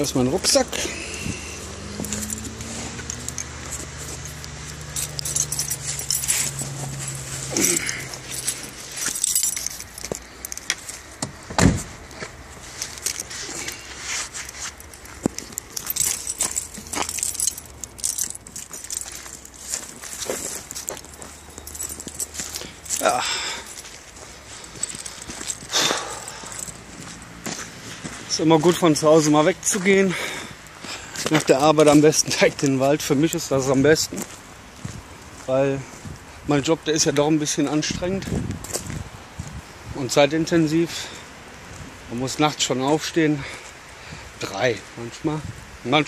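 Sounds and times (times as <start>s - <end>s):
footsteps: 0.0s - 36.3s
keys jangling: 1.7s - 11.1s, 12.8s - 27.5s
rustling: 1.8s - 28.3s
gear being handled: 1.9s - 11.1s, 12.6s - 27.3s
loud thump: 11.2s - 11.9s.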